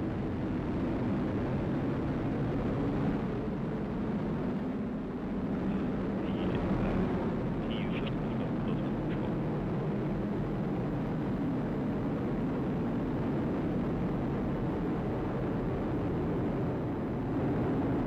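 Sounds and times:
rocket engine rumble: 0:00.0 - 0:18.0.

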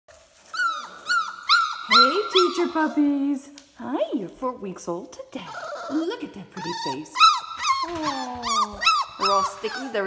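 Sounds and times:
puppy whining: 0:00.5 - 0:03.0, 0:05.4 - 0:10.0.

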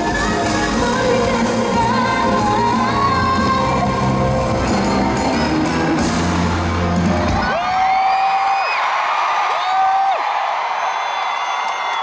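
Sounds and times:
loud pop backing track: 0:00.0 - 0:08.2
arena crowd cheering: 0:04.6 - 0:12.0.

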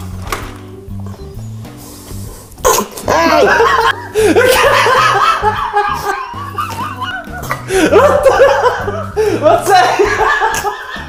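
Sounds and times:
background music: 0:00.0 - 0:11.0
loud laughter: 0:03.1 - 0:11.0.

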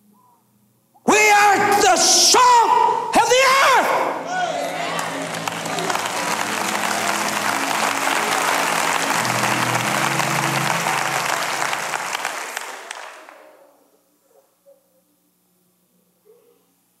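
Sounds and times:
held music chords: 0:04.5 - 0:13.2
audience applauding: 0:04.5 - 0:13.7.

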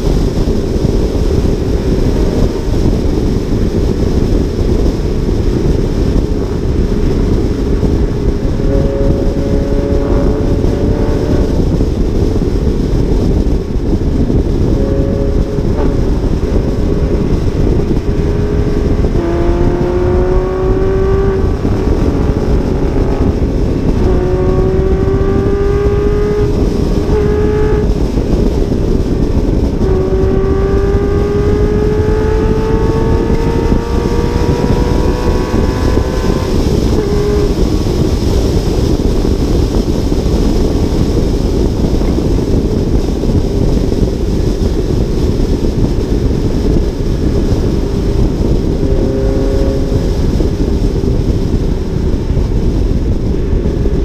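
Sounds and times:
car engine rising in pitch: 0:00.0 - 0:54.0
heavy wind rush: 0:00.0 - 0:54.0.

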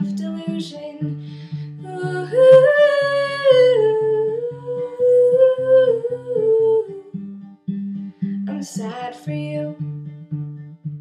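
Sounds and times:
fingerpicked acoustic guitar: 0:00.0 - 0:11.0
woman singing wordless note: 0:01.9 - 0:07.1.

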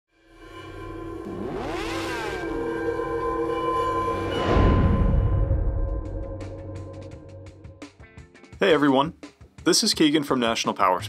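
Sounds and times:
droning chord: 0:00.1 - 0:08.0.

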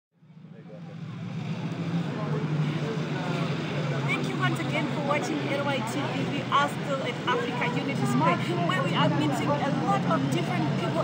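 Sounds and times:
faint voices: 0:00.4 - 0:11.0.

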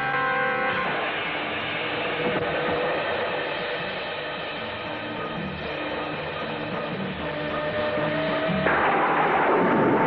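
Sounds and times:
soundtrack music with sustained chords: 0:00.0 - 0:10.0
noisy rushing sound effect: 0:00.8 - 0:10.0.

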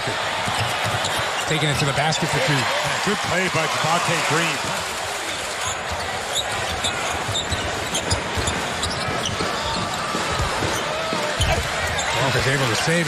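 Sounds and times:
arena crowd noise: 0:00.0 - 0:13.0.

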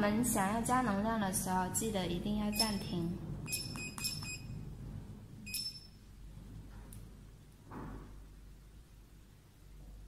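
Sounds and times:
short high beeps: 0:05.5 - 0:06.0.

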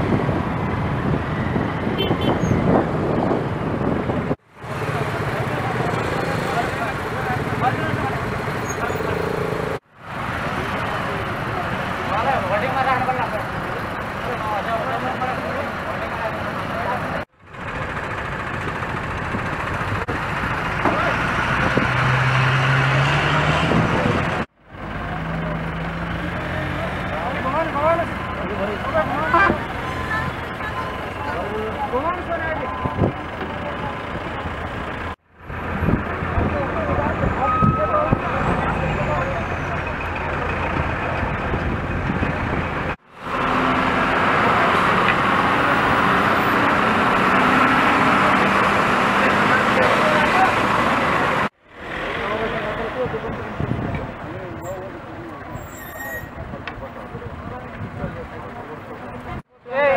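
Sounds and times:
vehicle engines idling in traffic: 0:00.0 - 0:22.5, 0:24.0 - 0:59.6
people talking: 0:04.8 - 0:09.5, 0:10.5 - 0:17.3, 0:26.2 - 0:34.6, 0:36.2 - 0:41.2, 0:48.0 - 0:59.9.

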